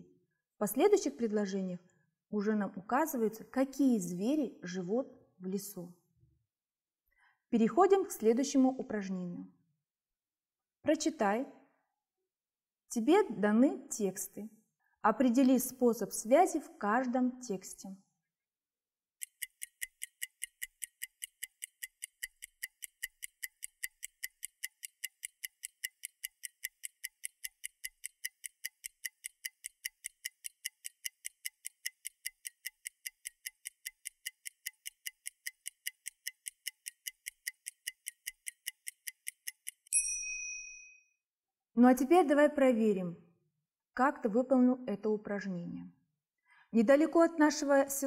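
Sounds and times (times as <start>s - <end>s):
clock ticking: 19.2s - 40.0s
bright timer ding: 39.9s - 41.1s.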